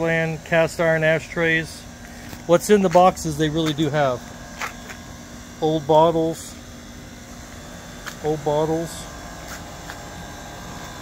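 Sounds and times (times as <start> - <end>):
air conditioning unit humming: 0.0 - 11.0.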